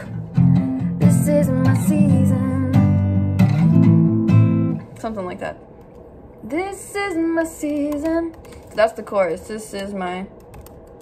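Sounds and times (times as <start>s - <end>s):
woman singing: 0.5s - 3.2s, 6.4s - 8.5s.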